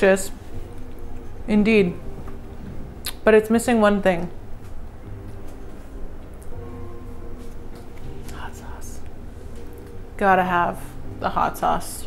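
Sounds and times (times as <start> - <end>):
woman whispering: 8.2 - 9.1.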